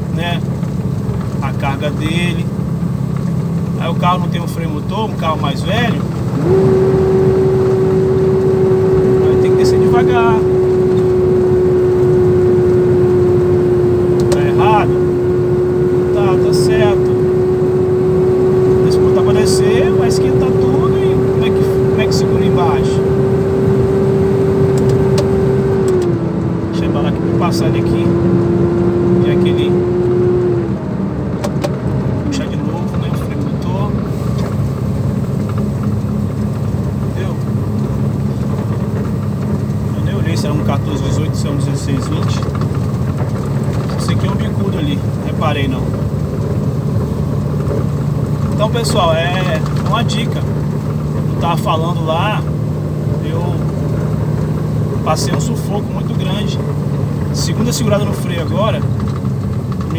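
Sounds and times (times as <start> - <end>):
diesel truck engine hum: 0.0 - 59.9
steady whine: 0.0 - 59.9.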